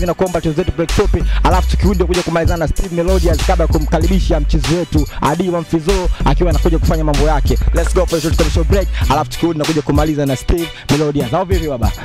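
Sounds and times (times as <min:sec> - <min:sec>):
deep bass notes: 0:00.0 - 0:05.2, 0:05.8 - 0:10.2
man rapping over a beat: 0:00.0 - 0:12.0
drum hits: 0:06.5 - 0:08.9.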